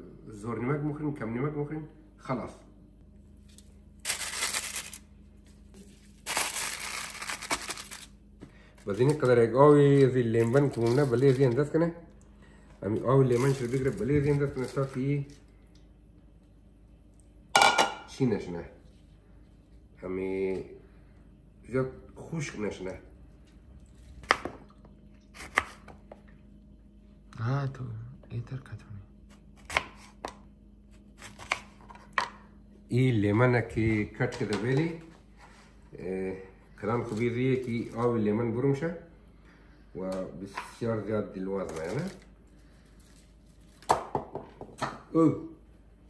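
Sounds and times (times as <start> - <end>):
aluminium foil crinkling: 3.5 - 5.1, 5.8 - 11.9, 13.1 - 15.4
knife cutting lemon: 25.4 - 26.0.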